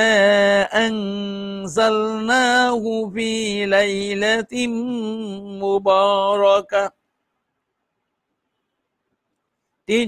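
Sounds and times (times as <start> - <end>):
man chanting melodically: 0.0 - 6.9.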